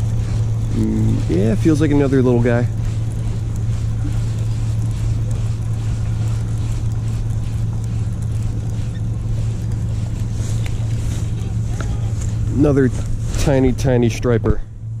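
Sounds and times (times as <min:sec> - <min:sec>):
low engine drone: 0:00.0 - 0:15.0
outdoor noise: 0:00.0 - 0:15.0.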